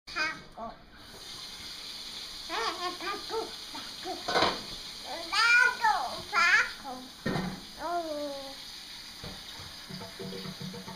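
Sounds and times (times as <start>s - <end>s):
baby babbling and calling out: 7.8s - 8.6s.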